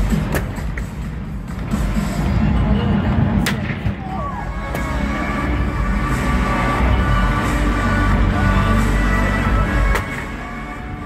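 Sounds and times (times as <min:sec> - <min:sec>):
music over arena sound system: 0:00.0 - 0:11.0.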